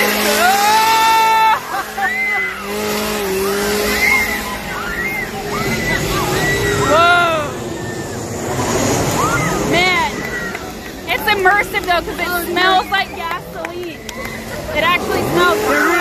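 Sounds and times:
people screaming: 0.0 - 16.0.

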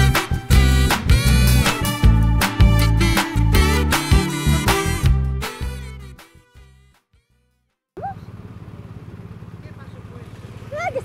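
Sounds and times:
music: 0.0 - 7.8
motorcycle engine idling: 8.0 - 11.0
voices: 9.3 - 11.0.

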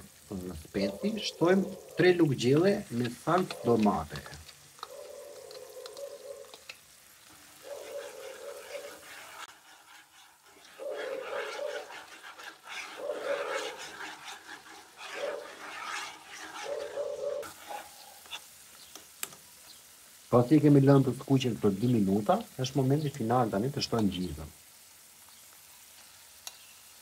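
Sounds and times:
light sizzling in a pan: 0.0 - 27.0
metal spoon scraping a bowl: 3.0 - 6.6, 7.4 - 18.5.

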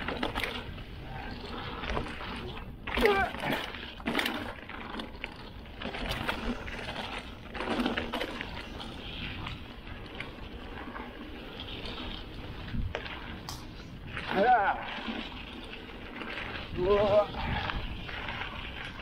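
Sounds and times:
wind on microphone: 0.0 - 3.7, 11.8 - 15.3, 16.3 - 19.0
bike knocking and rattling: 0.0 - 19.0
bike tyres rolling over dirt: 0.0 - 19.0.

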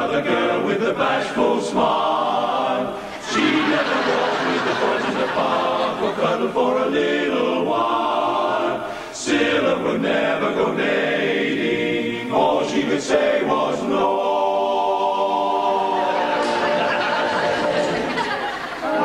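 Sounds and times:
male chorus singing unaccompanied: 0.0 - 19.0.

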